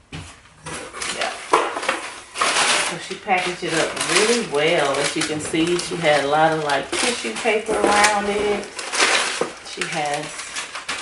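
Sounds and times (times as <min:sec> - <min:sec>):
tissue paper rustling and crinkling: 0:00.7 - 0:11.0.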